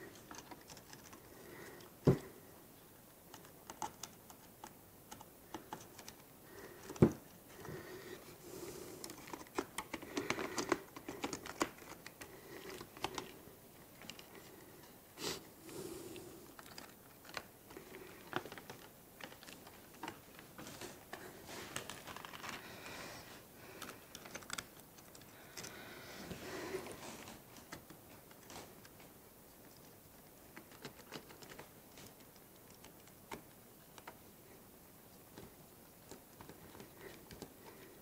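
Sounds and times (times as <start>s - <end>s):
plastic parts clicking and rattling: 9.0s - 14.4s, 16.5s - 20.5s, 21.1s - 22.6s, 23.7s - 25.8s.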